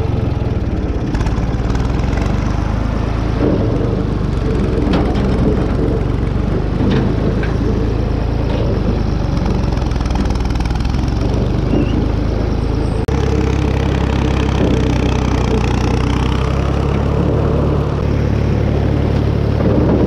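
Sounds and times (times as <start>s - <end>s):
tractor engine running: 0.0s - 20.0s.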